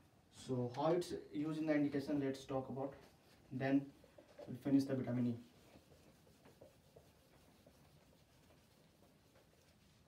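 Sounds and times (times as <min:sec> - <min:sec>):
hand wiping whiteboard: 0:02.0 - 0:10.0.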